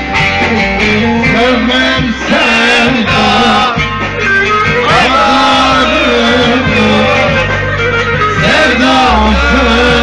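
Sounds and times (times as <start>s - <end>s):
plucked lutes playing folk melody: 0.0s - 10.0s.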